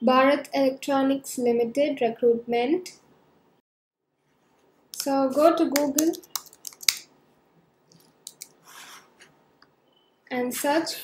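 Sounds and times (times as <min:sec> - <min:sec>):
keyboard keys clicking: 0:08.3 - 0:08.5.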